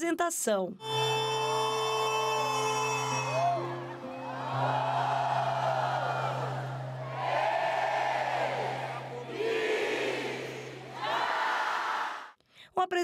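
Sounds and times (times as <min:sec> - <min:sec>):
live show music with held notes: 0:00.8 - 0:11.6
crowd whooping and cheering: 0:03.2 - 0:12.3.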